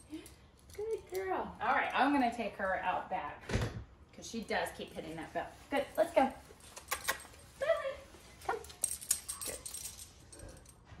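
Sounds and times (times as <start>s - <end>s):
light clicks and rattles: 5.8s - 11.0s.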